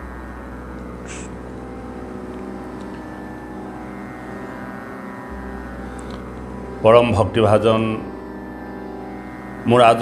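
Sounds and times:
devotional music drone: 0.0 - 10.0.

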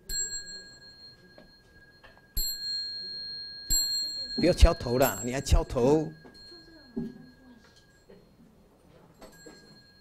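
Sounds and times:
small ritual bell ringing: 0.0 - 10.0.

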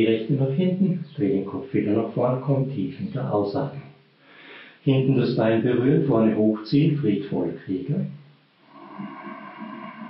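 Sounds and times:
man breathing softly: 4.2 - 4.8.

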